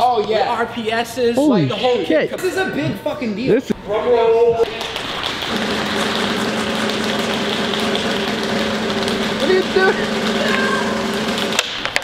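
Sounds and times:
snare drum roll: 0:05.5 - 0:11.7.

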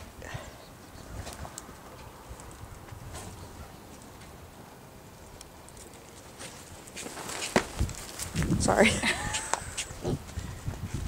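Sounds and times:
hooves shuffling on wood chips: 0:05.3 - 0:11.0.

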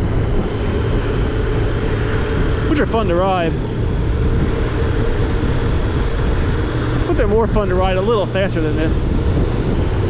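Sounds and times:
motorcycle engine running: 0:00.0 - 0:10.0
wind and road noise: 0:00.0 - 0:10.0.

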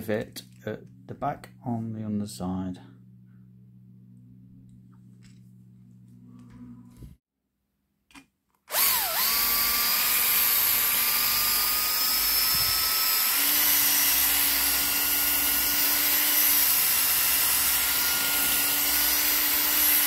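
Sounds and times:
electric drill whining: 0:08.7 - 0:20.0.

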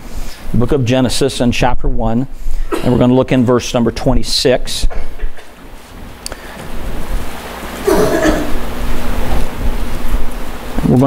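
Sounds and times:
person coughing: 0:02.7 - 0:03.1, 0:07.8 - 0:08.6.

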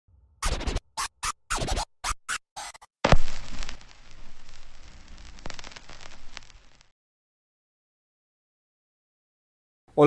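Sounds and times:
turntable scratching vinyl: 0:00.4 - 0:02.9.

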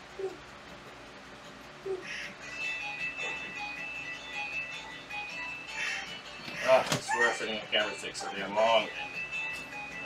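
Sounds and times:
video game music: 0:02.1 - 0:10.0.

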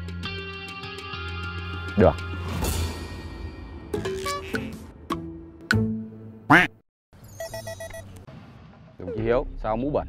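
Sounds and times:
electronic beeps: 0:07.2 - 0:08.2.

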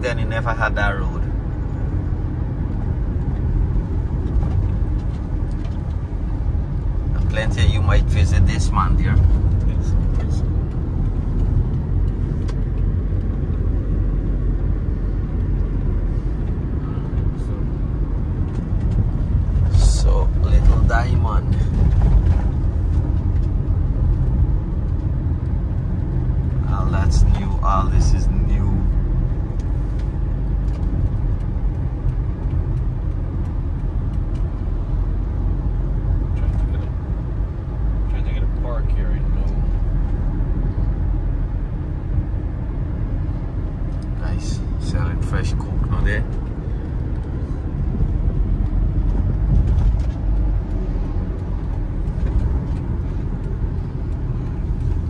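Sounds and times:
road and engine rumble in car: 0:00.0 - 0:55.0.

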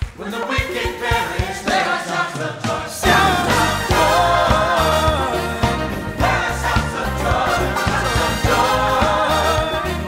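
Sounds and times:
choir singing gospel: 0:00.0 - 0:10.0
band with bass and drums: 0:03.0 - 0:10.0.

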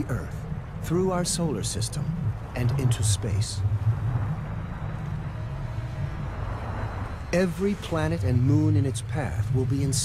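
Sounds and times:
deep low rumble: 0:00.0 - 0:10.0.

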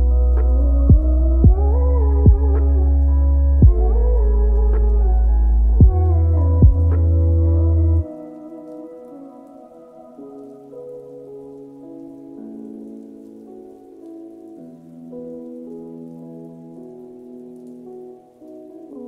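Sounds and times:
muffled pop song: 0:00.0 - 0:15.8
steady rain: 0:00.0 - 0:19.0.

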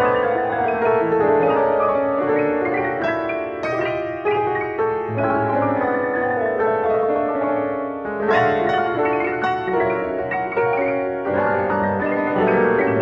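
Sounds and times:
piano music: 0:00.0 - 0:13.0.

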